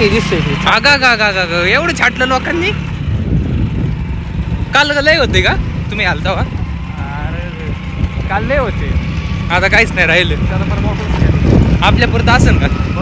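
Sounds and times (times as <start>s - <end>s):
vehicle rumbling on dirt track: 0.0s - 13.0s.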